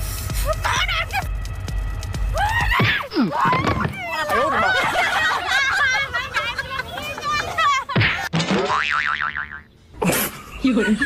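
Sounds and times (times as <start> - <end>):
cartoon boing sound effect: 8.4 - 9.6.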